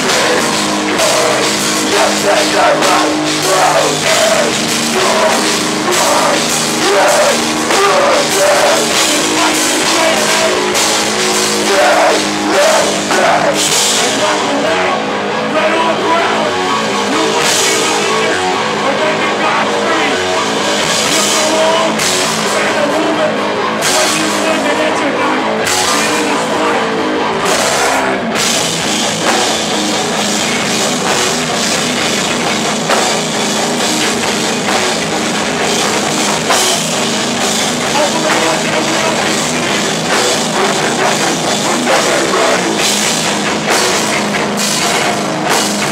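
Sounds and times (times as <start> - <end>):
distorted electric guitars: 0.0 - 45.9
pounding drum kit: 0.0 - 45.9.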